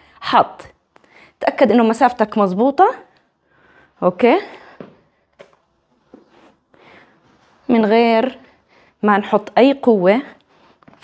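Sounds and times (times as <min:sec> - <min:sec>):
sneaker taps and scuffs: 0:04.8 - 0:06.6.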